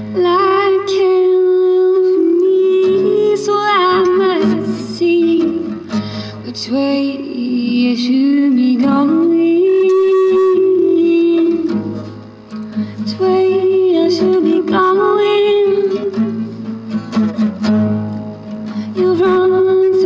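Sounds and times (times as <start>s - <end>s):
acoustic guitar strumming: 0.0s - 20.0s.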